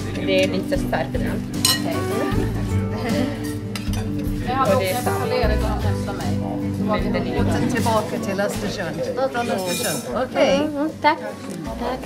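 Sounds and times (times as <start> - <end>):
music: 0.0 - 12.0
spoon clinking against plates: 1.6 - 2.0, 3.7 - 4.4, 9.4 - 10.2.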